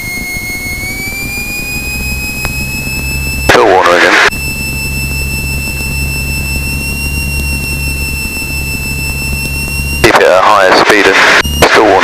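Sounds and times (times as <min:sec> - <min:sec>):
piston aircraft engine running: 0:00.0 - 0:12.0.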